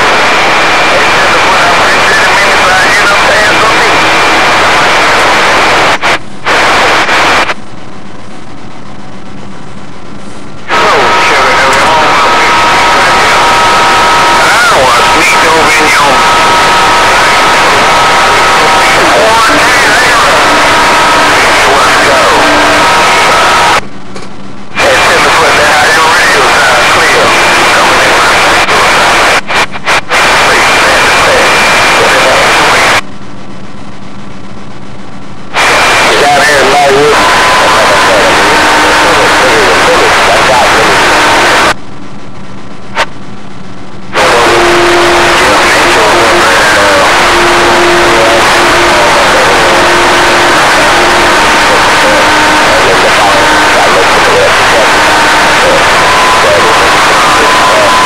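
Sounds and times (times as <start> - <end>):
garbled voices on radio: 0.0 - 7.6, 10.6 - 23.8, 24.7 - 33.0, 35.5 - 41.8, 44.1 - 58.0
radio static: 0.0 - 58.0.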